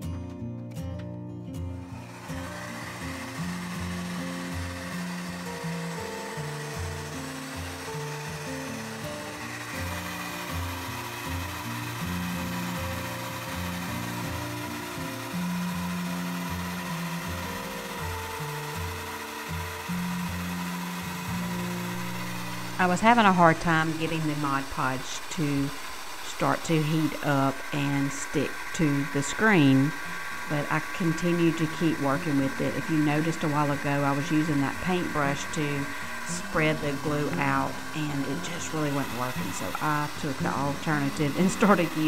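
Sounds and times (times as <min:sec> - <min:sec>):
hair dryer blowing: 0:01.8 - 0:42.0.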